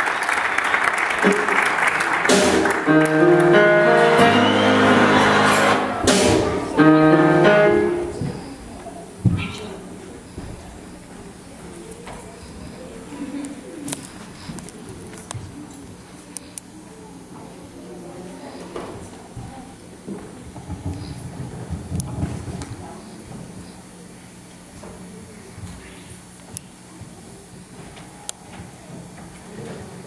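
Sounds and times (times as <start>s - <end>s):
low hum and hiss: 0.0s - 30.0s
murmur of voices in a hall: 0.0s - 30.0s.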